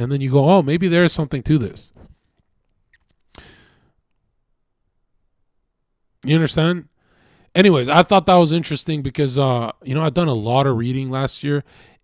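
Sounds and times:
man sighing: 0:03.3 - 0:03.9.

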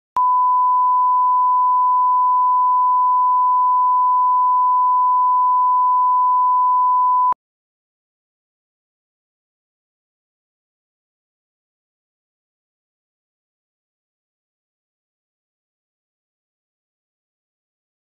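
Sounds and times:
steady electronic beep tone: 0:00.2 - 0:07.4.

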